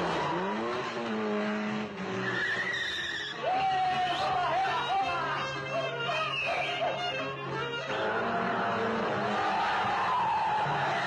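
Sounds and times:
car engines revving: 0:00.0 - 0:04.8, 0:07.2 - 0:11.0
tyres screeching: 0:00.0 - 0:11.0.

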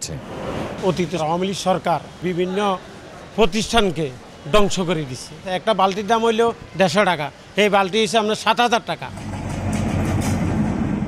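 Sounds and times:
train rumbling on rails: 0:09.1 - 0:11.0.

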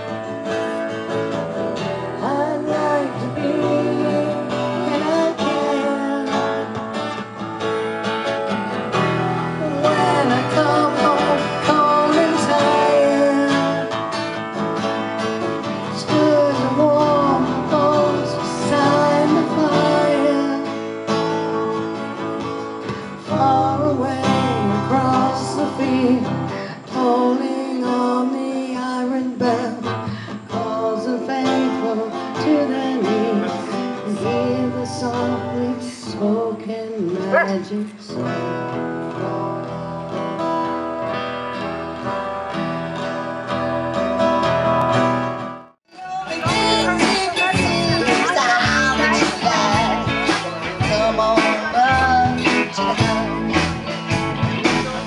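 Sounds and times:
acoustic guitars playing a song: 0:00.0 - 0:55.0.

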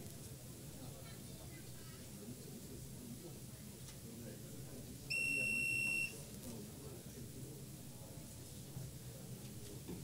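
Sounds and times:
faint room murmur: 0:00.0 - 0:10.0.

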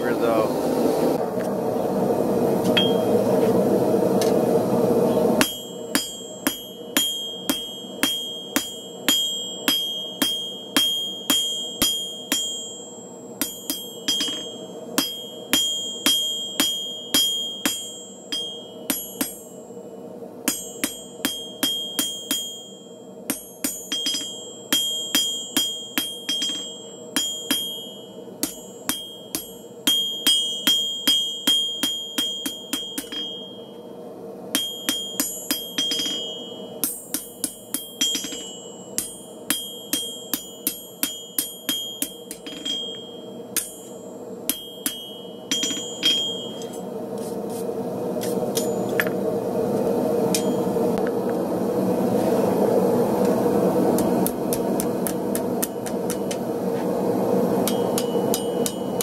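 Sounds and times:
hammer striking steel on anvil: 0:02.7 - 0:03.1, 0:05.4 - 0:19.8, 0:20.4 - 0:33.8, 0:34.5 - 0:47.3, 0:48.2 - 0:49.2, 0:50.3 - 0:51.1, 0:53.9 - 0:56.5, 0:57.6 - 0:59.0.

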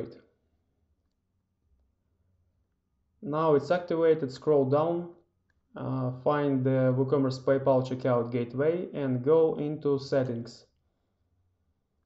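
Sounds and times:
man speaking: 0:03.2 - 0:05.2, 0:05.8 - 0:10.6.

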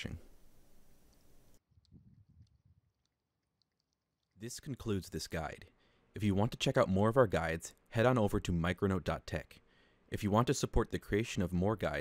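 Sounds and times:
room tone hiss: 0:00.0 - 0:01.6
faint ticks: 0:00.9 - 0:04.4.

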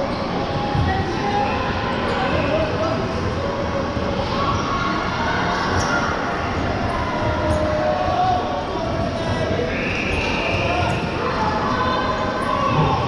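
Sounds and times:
people shouting and chattering: 0:00.0 - 0:13.0.

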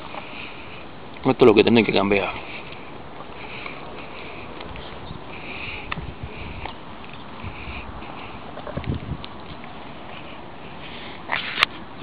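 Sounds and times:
soft footsteps: 0:00.0 - 0:12.0.

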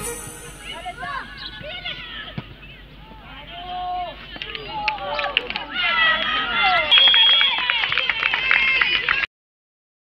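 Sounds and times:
distant shouts of players: 0:00.0 - 0:09.1.

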